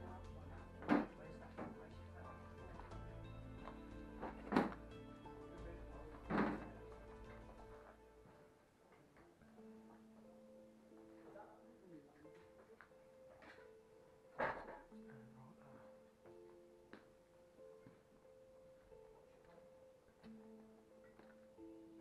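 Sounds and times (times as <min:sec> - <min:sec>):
background music with held tones: 0:00.0 - 0:22.0.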